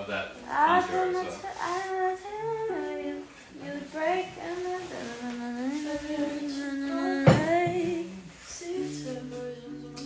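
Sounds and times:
person humming a melody: 0:00.5 - 0:10.0.

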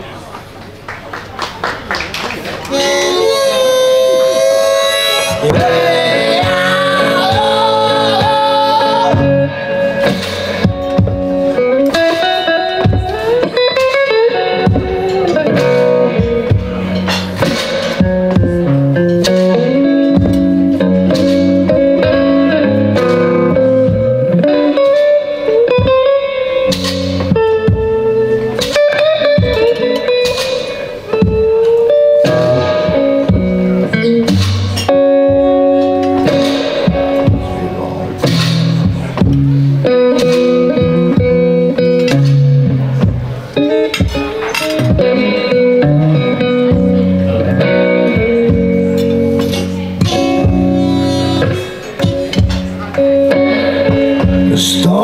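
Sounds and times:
electric guitar blues: 0:02.6 - 0:55.0
harmonica held notes: 0:02.7 - 0:09.4.

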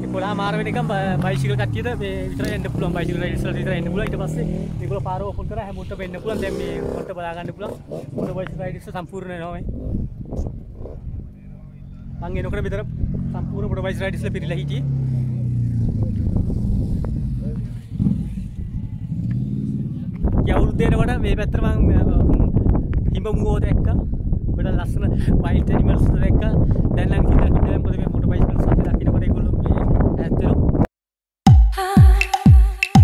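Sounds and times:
man talking: 0:00.0 - 0:09.7, 0:11.2 - 0:16.3
motorcycle engine running: 0:00.0 - 0:21.4.

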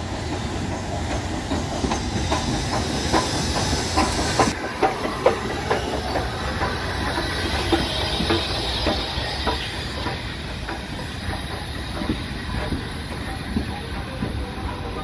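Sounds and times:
steam hissing: 0:00.0 - 0:15.0
train wheels clacking on rail joints: 0:00.0 - 0:15.0.

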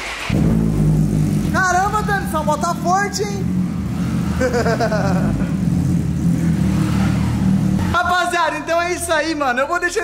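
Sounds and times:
motorcycle engine idling: 0:00.3 - 0:08.0
laughter: 0:04.4 - 0:05.6.

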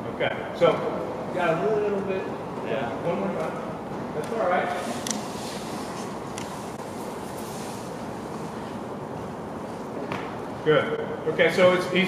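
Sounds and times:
indoor sports hall background noise: 0:00.0 - 0:12.0.

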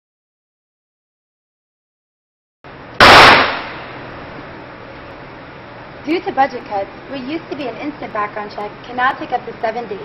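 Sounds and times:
steady background hum: 0:02.7 - 0:10.0
handgun shot with echo: 0:03.0 - 0:04.0.

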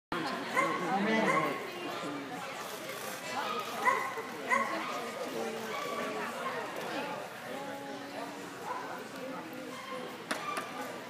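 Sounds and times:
chatter of voices: 0:00.1 - 0:11.0
dog barking: 0:00.6 - 0:01.6, 0:03.8 - 0:04.8.

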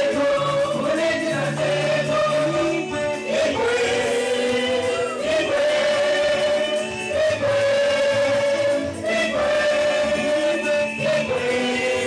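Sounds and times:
choir and congregation singing: 0:00.0 - 0:12.0.

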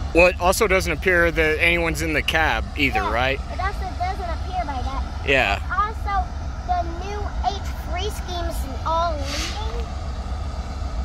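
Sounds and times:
steady low rumble: 0:00.0 - 0:11.0
child speaking: 0:02.8 - 0:09.8.

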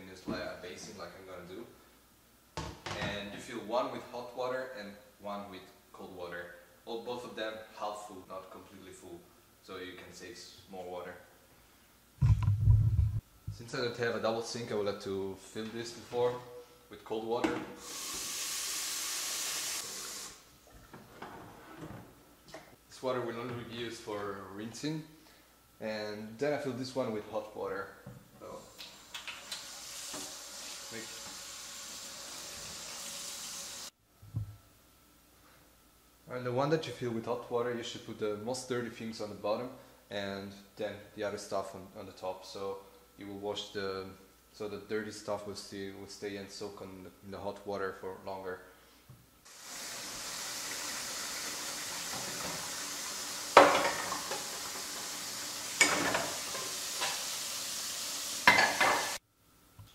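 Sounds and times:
tap running water into sink: 0:29.1 - 0:33.8, 0:49.6 - 0:59.2
dishes clattering in a sink: 0:53.6 - 0:55.1, 0:55.8 - 0:57.3, 0:58.4 - 0:59.2.

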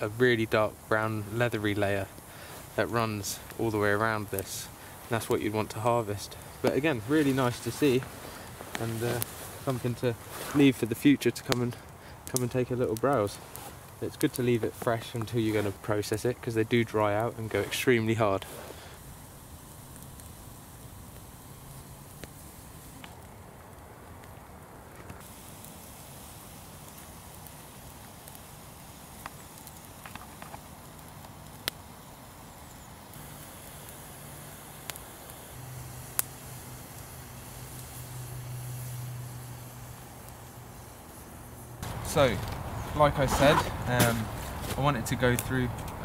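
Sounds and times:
campfire crackling and popping: 0:00.0 - 0:46.0.

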